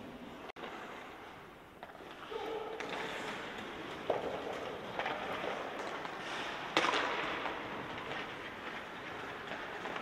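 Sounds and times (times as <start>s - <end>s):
skate blades scraping ice: 1.8s - 10.0s
echoing rink hiss: 2.2s - 3.9s, 5.9s - 8.3s.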